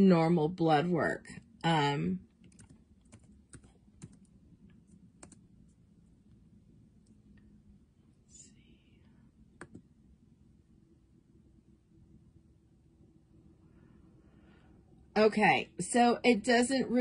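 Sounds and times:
laptop keys clicking: 2.4s - 4.3s, 5.2s - 5.4s, 9.6s - 9.9s.

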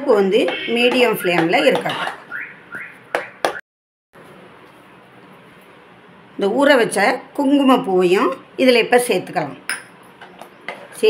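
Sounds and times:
spoon knocking on metal pan: 0.4s - 2.2s.

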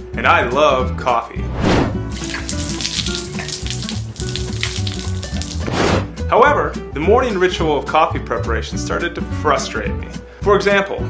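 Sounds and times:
background music with held notes: 0.0s - 11.0s
coffee pouring and splashing: 2.1s - 5.7s.

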